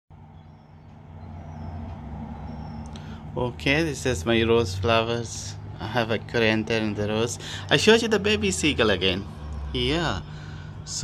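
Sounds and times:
vehicle engine running: 0.1 - 11.0.

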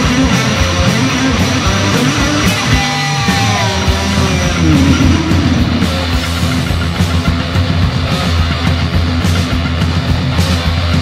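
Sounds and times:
distorted electric guitar: 0.0 - 8.9
drums: 0.0 - 11.0
electric bass: 0.0 - 11.0
hardcore punk band playing: 0.0 - 11.0.

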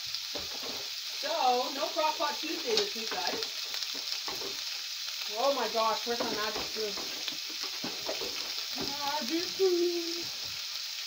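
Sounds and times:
food sizzling in frying pan: 0.0 - 11.0.

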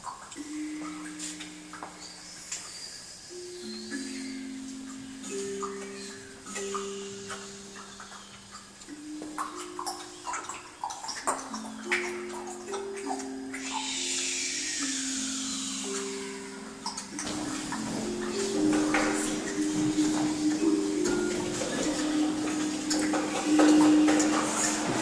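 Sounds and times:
handpan ringing notes: 0.0 - 25.0
rushing water-like noise: 0.0 - 25.0.

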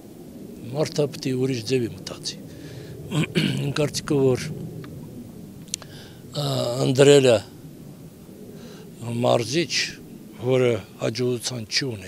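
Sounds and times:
man speaking into a microphone: 0.6 - 2.5, 3.1 - 4.6, 6.4 - 7.5, 9.0 - 12.0.

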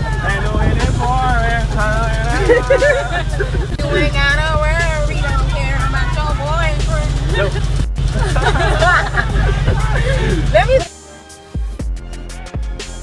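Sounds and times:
excited voices babbling: 0.0 - 10.9
loud music with heavy bass beat: 0.0 - 13.0.

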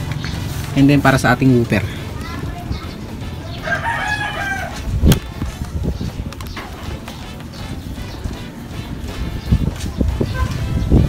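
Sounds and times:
rooster crowing: 3.6 - 4.8.

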